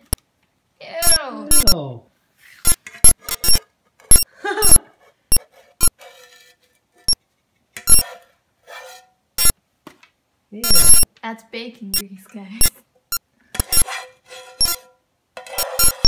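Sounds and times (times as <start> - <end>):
spatula scraping metal frying pan: 2.6 - 4.2, 5.0 - 7.2, 7.8 - 9.5, 13.5 - 16.0.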